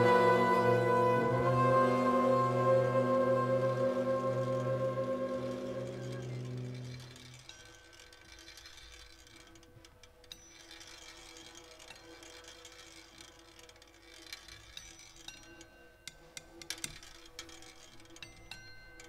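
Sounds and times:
jazz ensemble low chord: 0.0s - 6.7s
soft held tones: 0.0s - 7.6s.

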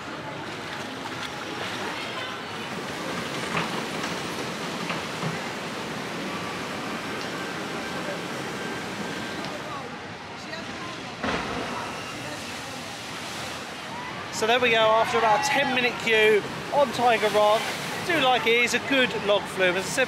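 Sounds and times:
water rushing along a channel: 0.0s - 20.0s.

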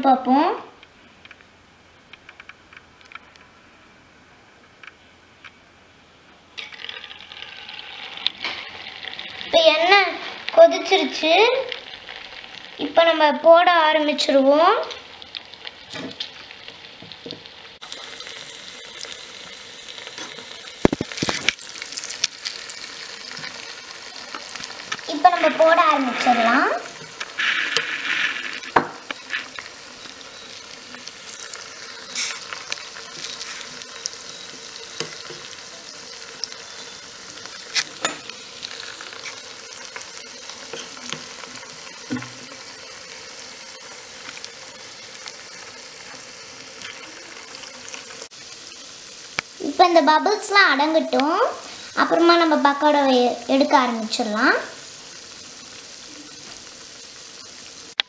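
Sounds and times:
oil bubbling while deep-frying: 6.6s - 58.0s.

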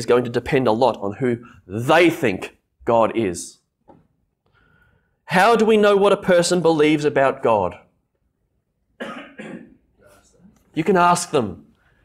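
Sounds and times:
person coughing: 9.0s - 9.9s.

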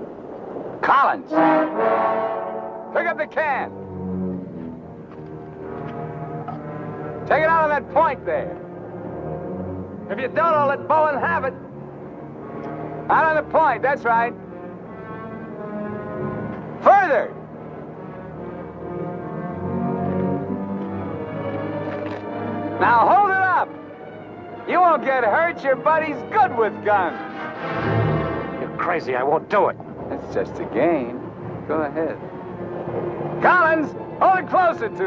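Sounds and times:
loud brass figures: 0.8s - 23.8s, 24.6s - 30.1s
dramatic orchestral music: 1.3s - 35.0s.

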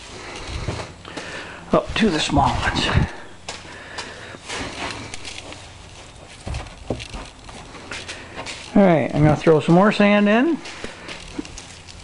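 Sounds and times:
sand pouring and scraping: 4.4s - 12.0s.

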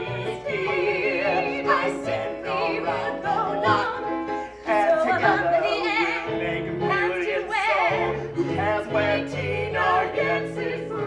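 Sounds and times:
musical accompaniment: 0.0s - 11.0s.

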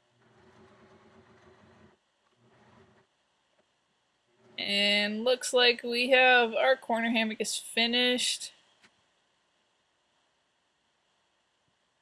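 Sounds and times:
electric sewing machine running: 0.0s - 3.0s.

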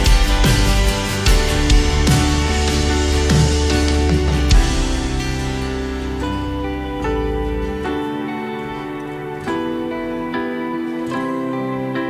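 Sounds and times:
worship band playing: 0.0s - 10.4s.

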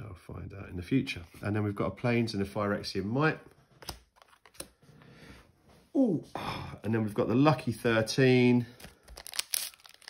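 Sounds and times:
card rustling: 3.4s - 4.8s, 8.7s - 10.0s.

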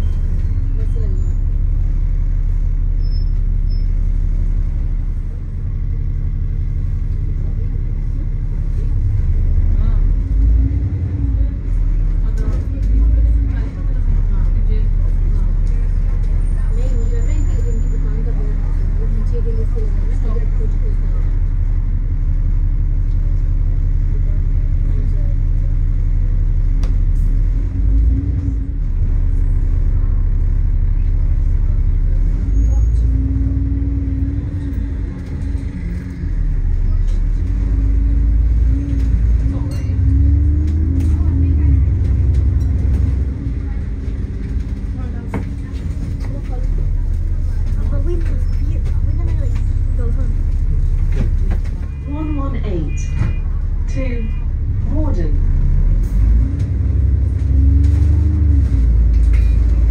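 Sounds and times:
bus engine running: 0.0s - 59.9s
road rumble: 0.0s - 59.9s.

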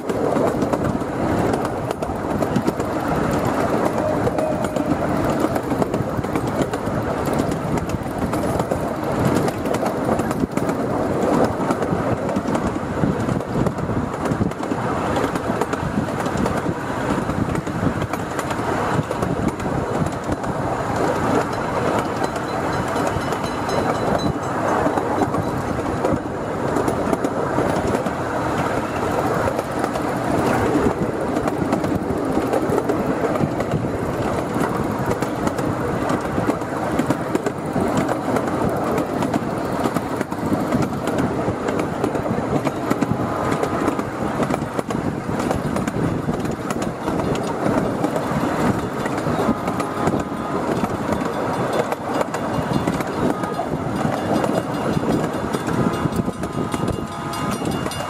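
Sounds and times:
miniature train cars rumbling: 0.0s - 58.0s
wheels clicking on rails: 0.0s - 58.0s.

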